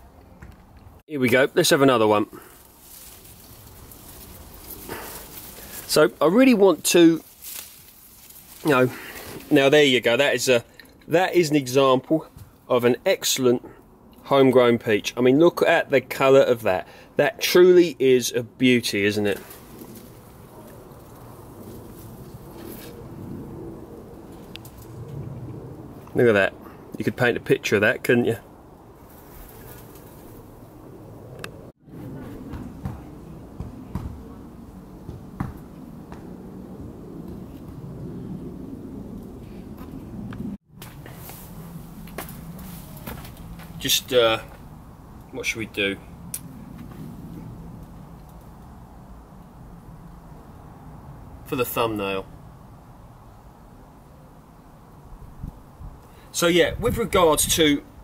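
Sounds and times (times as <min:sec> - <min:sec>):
leaves and twigs rustling: 0:00.8 - 0:11.1, 0:18.8 - 0:26.0, 0:28.8 - 0:31.0, 0:40.7 - 0:45.5.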